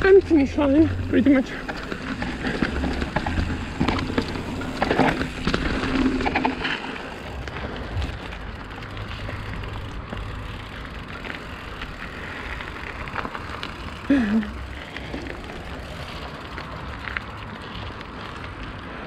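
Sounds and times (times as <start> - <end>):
bike rattling over bumps: 0.0 - 19.0
bike tyres crunching on gravel: 0.0 - 19.0.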